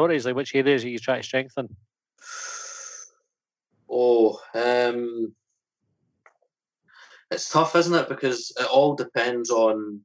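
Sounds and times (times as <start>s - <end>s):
man breathing in: 2.2s - 3.1s, 6.9s - 7.3s.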